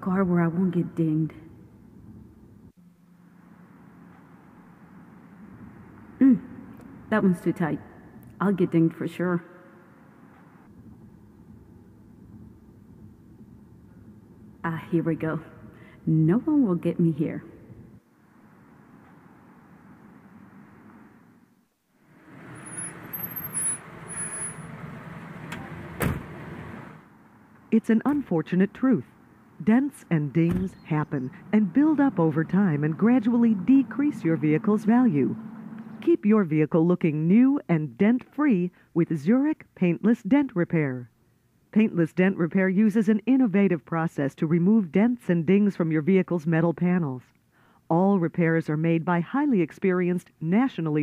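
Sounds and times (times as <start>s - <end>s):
car engine rumble and road noise: 0.0s - 8.4s, 9.9s - 15.8s, 16.4s - 36.4s
brake squeals: 22.1s - 27.0s
truck engine running: 22.1s - 27.4s, 31.0s - 36.0s.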